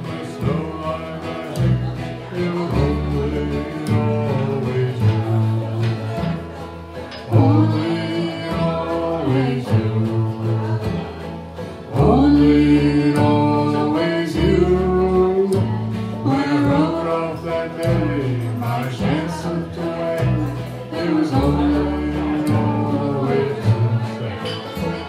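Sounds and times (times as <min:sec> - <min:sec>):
bluegrass band playing: 0:00.0 - 0:25.0
person singing: 0:00.0 - 0:25.0.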